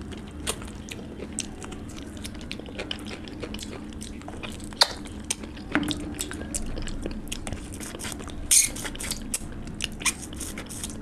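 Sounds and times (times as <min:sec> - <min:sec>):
chewing with wet smacks: 0:00.0 - 0:11.0.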